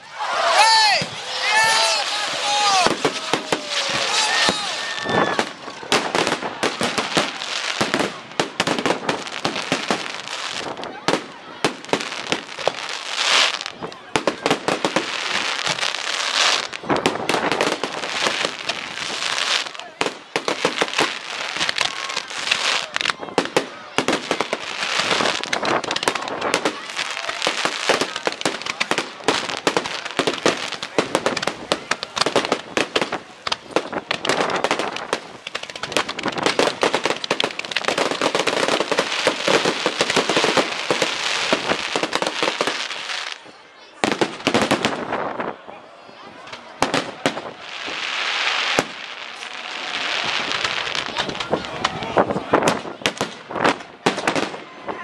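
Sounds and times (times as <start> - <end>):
fireworks crackling and banging: 0.4 - 55.0.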